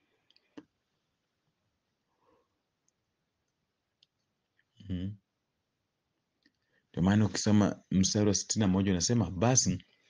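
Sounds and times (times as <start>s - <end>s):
man's short vocal sound: 4.8s - 5.2s.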